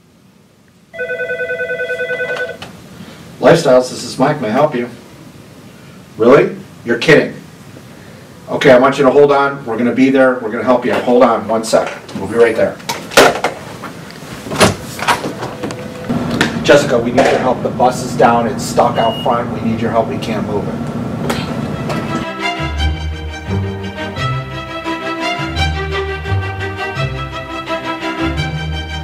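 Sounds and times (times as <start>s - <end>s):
desk telephone ringing: 0.9s - 2.6s
door being pulled open: 14.4s - 16.4s.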